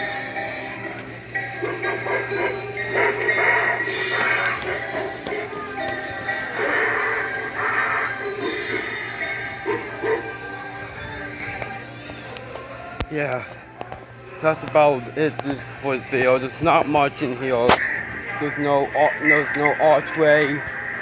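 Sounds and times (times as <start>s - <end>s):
toy speaker music: 0.1s - 10.6s, 17.7s - 21.0s.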